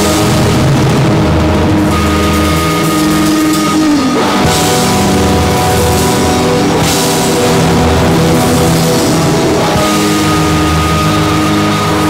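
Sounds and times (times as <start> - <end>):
live rock band droning: 0.0 - 12.0.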